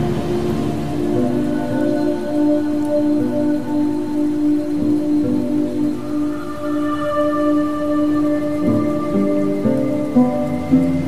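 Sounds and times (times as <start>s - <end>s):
rain hiss: 0.0s - 11.0s
slow instrumental music: 0.0s - 11.0s.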